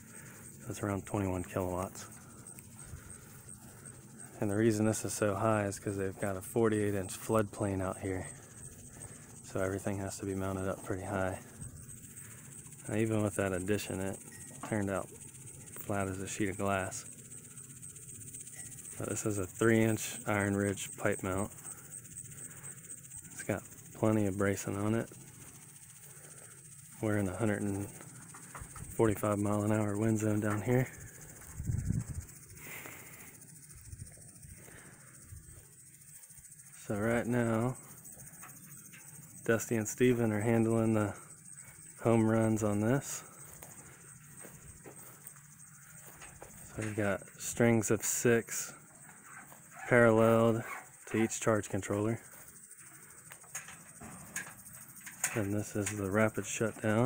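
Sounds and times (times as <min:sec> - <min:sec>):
faint outdoor background: 0:00.0 - 0:57.0
insects trilling: 0:00.0 - 0:57.0.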